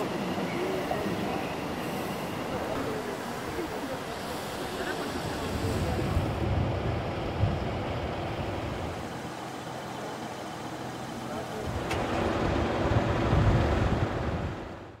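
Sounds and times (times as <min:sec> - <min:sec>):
low rumble of cars: 0:00.0 - 0:15.0.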